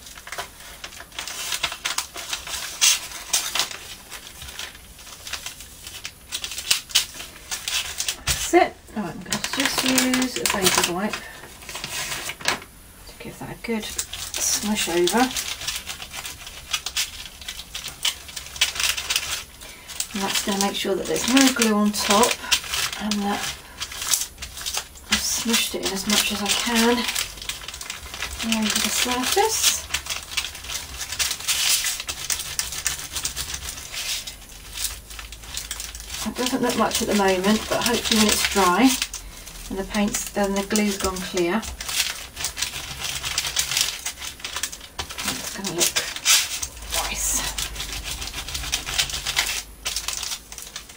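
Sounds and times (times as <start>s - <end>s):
paper rubbing scratchy rustling: 0.0s - 8.6s, 9.3s - 12.6s, 13.8s - 50.9s
paper wipe rubbing over paper: 25.1s - 39.0s.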